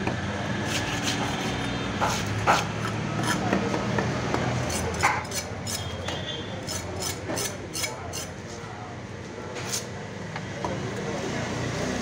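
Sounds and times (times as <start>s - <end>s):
knife blade scraping fish: 0.6s - 3.5s, 4.6s - 8.4s, 9.6s - 9.9s.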